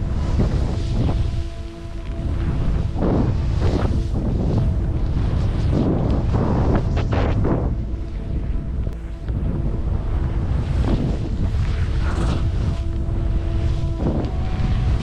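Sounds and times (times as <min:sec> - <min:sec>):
skis hissing through powder snow: 0:00.0 - 0:07.8, 0:10.4 - 0:15.0
wind buffeting microphone: 0:00.0 - 0:15.0.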